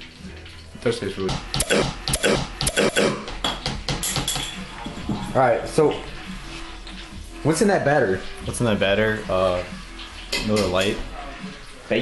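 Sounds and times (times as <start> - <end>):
dishes and cutlery clinking: 3.3 - 6.0, 10.0 - 11.6.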